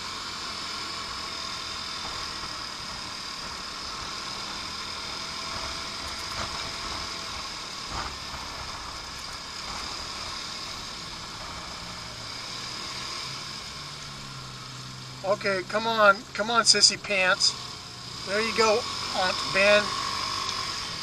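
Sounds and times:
scooter engine: 0.0s - 21.0s.

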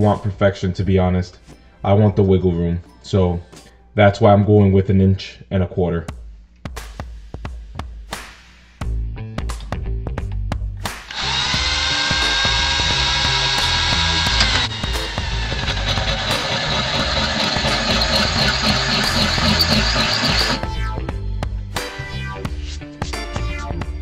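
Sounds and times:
background music with beat: 6.1s - 11.1s, 20.6s - 24.0s
drill grinding into stone: 11.1s - 20.6s.

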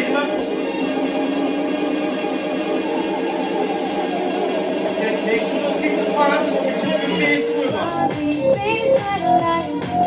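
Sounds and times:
droning workout music: 0.0s - 10.0s.

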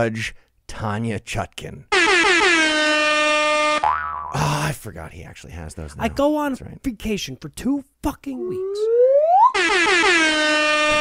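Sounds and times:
air horn blast: 1.9s - 3.8s, 9.6s - 11.0s.

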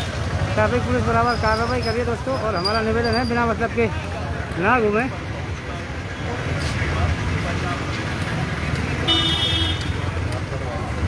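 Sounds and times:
traffic rumble: 0.0s - 11.0s
vehicle horn toot: 9.1s - 10.0s.

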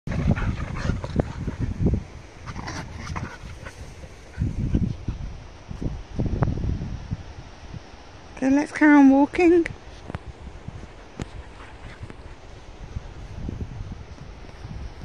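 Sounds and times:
dogs growling and yipping: 0.1s - 1.8s, 2.4s - 5.2s.

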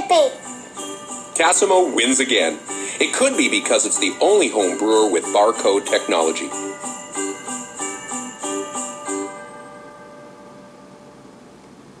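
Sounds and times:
chiming jingle note: 0.0s - 11.4s
faint steady hiss: 0.0s - 12.0s.

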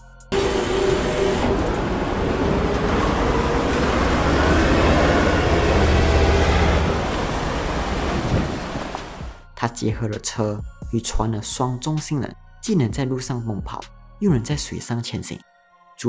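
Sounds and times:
vehicle engine rumble: 0.3s - 9.4s
water rushing and splashing: 0.3s - 9.4s.

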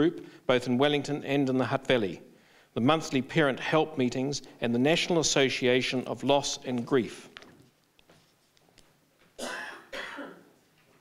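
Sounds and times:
person coughing: 9.4s - 10.5s.

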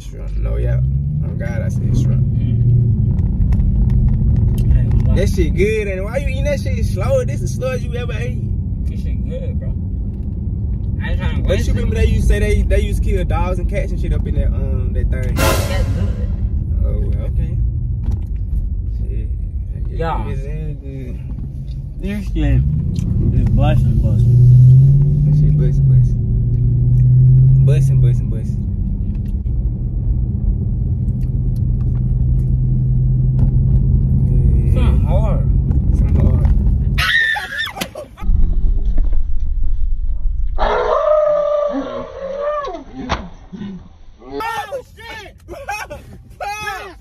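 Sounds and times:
car engine and road drone: 0.0s - 47.0s
low rumble: 15.1s - 21.8s, 38.2s - 44.2s
man screaming: 45.5s - 47.0s.

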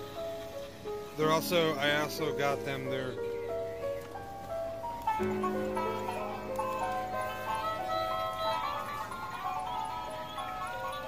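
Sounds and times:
toy speaker playing banjo tune: 5.1s - 11.0s.

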